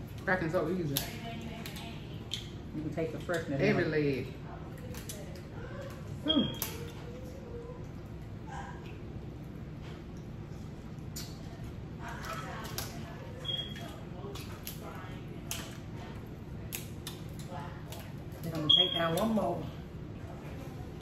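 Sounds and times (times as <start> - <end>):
low room hum: 0.0 - 21.0.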